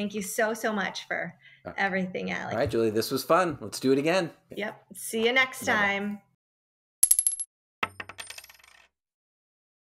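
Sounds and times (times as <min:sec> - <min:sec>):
coins dropping and clinking: 0:07.0 - 0:08.9.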